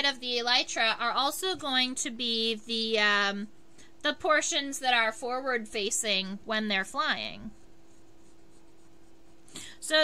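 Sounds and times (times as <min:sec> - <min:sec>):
pencil sketching on paper: 0:07.0 - 0:09.5.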